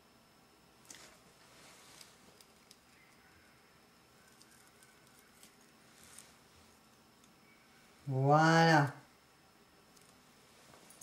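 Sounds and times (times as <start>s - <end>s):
faint steady high whine: 0.0s - 11.0s
faint clicks and rustles of hands: 0.8s - 3.5s, 4.2s - 7.9s, 9.8s - 11.0s.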